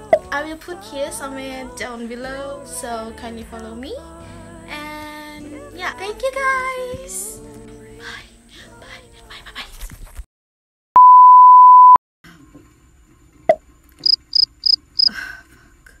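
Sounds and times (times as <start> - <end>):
electronic beep tone: 11.0 - 12.0, 14.0 - 14.8
short high-pitched beeps: 11.0 - 12.0, 14.0 - 14.8.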